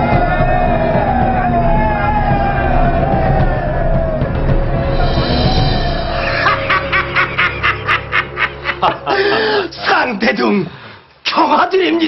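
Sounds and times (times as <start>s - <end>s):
low music drone: 0.0s - 10.3s
person laughing: 6.2s - 9.7s.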